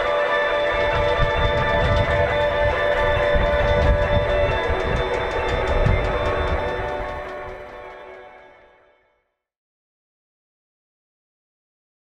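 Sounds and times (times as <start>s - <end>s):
many electric guitars strumming: 0.0s - 8.6s.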